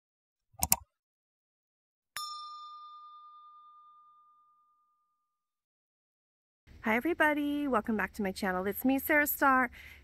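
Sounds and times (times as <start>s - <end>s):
bell ding: 2.2s - 5.4s.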